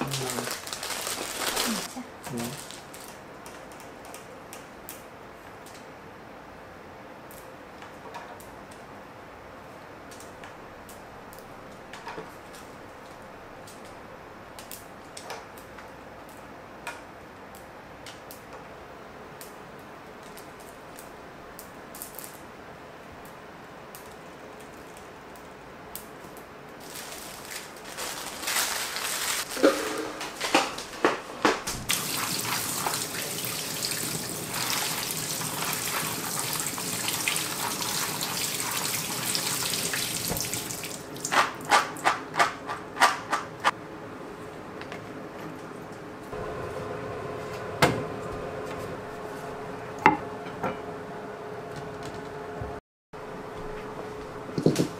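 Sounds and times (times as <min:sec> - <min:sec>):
tap running into a sink: 0:31.9 - 0:41.4.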